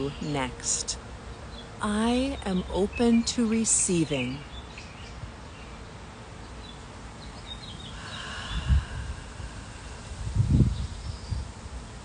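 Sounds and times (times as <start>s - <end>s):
faint bird chirps: 6.5s - 9.9s
wind buffeting microphone: 8.1s - 12.0s.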